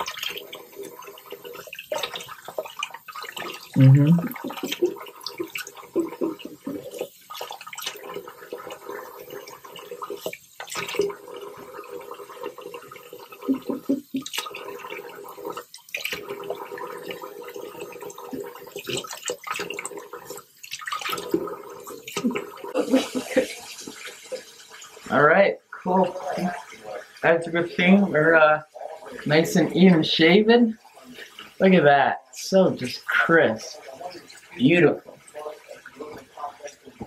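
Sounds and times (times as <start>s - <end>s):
faucet running into a sink: 0.0s - 37.0s.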